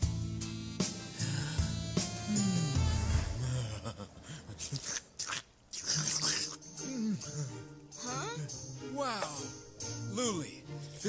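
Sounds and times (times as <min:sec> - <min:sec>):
man slurping soup: 0:04.7 - 0:06.6.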